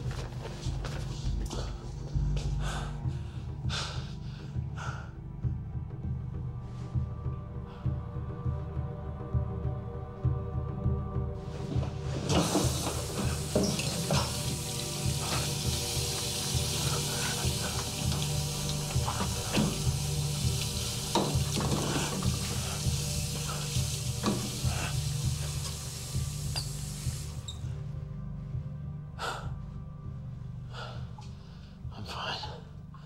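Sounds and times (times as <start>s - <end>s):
low music drone: 0.0s - 33.0s
faucet running into metal sink: 12.3s - 27.4s.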